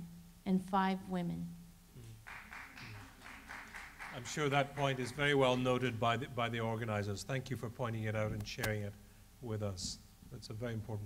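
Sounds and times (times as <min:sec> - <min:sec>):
seated audience noise: 0:02.1 - 0:05.9
light scattered clapping: 0:02.2 - 0:05.8.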